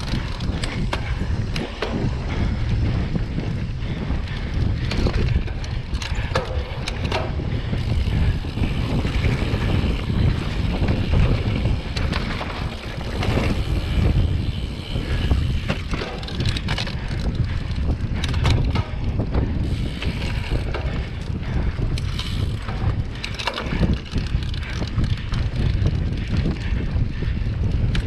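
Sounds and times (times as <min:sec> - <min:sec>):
bike clicks and rattles: 0:00.0 - 0:28.0
wind buffeting microphone: 0:00.0 - 0:28.0.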